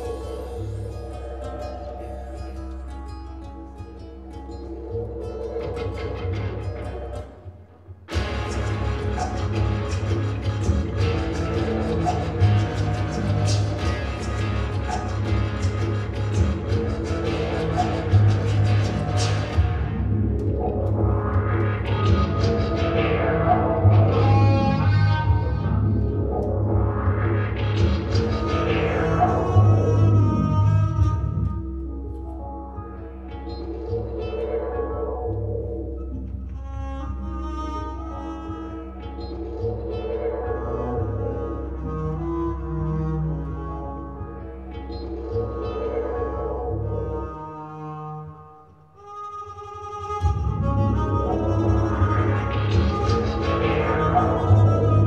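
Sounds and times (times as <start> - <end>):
strummed guitar loop: 0.0 - 36.2, 50.1 - 55.0
low drone: 0.0 - 47.6
loud deep bass layer: 8.0 - 38.2, 50.2 - 55.0.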